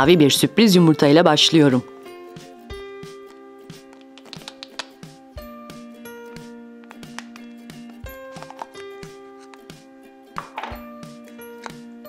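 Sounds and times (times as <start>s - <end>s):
gentle background music: 0.0s - 12.0s.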